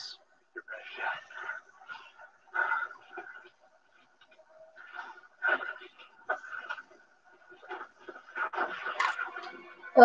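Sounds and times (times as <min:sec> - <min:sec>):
movie action sounds from tv: 0:00.0 - 0:10.0.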